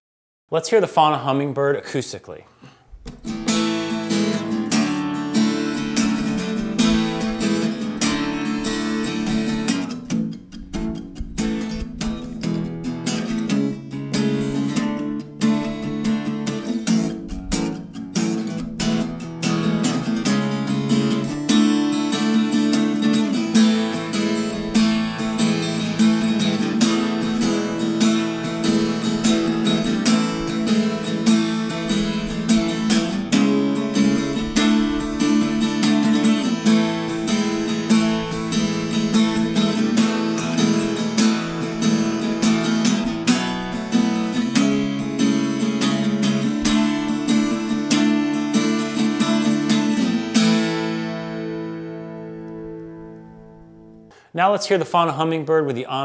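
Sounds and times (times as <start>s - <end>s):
acoustic guitar strummed and picked: 2.6s - 56.0s.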